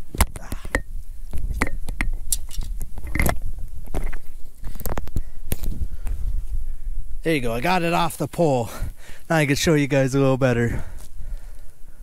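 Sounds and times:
wind rumble on microphone: 0:00.0 - 0:07.5.

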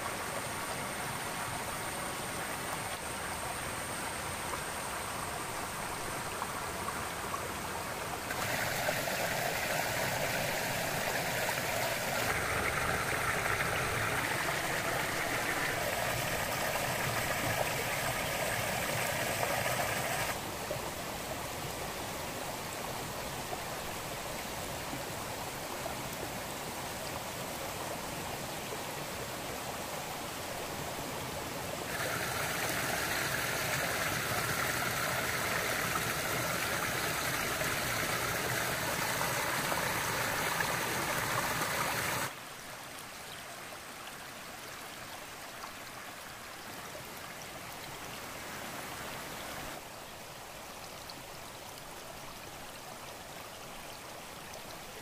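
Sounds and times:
stream running over rocks: 0:00.0 - 0:55.0.

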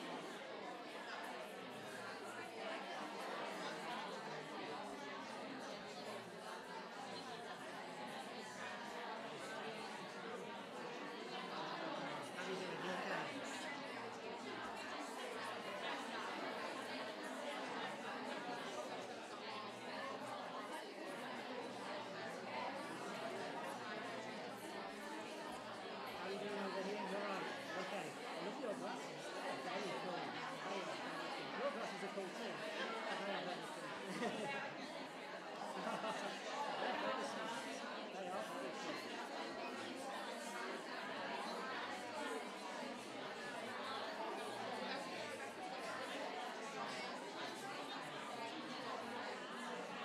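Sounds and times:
crowd chatter: 0:00.0 - 0:50.0
hubbub of overlapping conversation: 0:00.0 - 0:50.0.

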